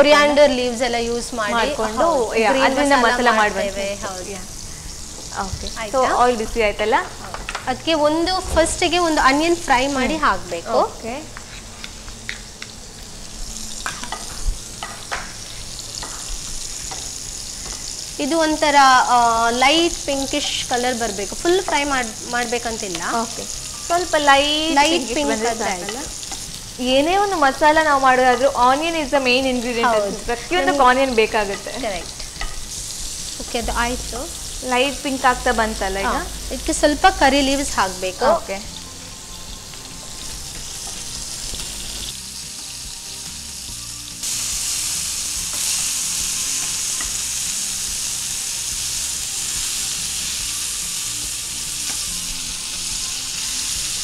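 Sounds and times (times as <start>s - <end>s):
person talking: 0.0s - 4.4s, 20.8s - 26.1s, 26.8s - 32.0s, 33.4s - 38.7s
onions sizzling in hot oil: 0.0s - 54.0s.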